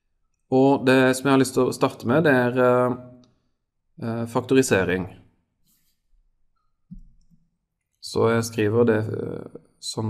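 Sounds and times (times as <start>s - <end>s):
faint clicks and soft taps: 6.6s - 8.0s.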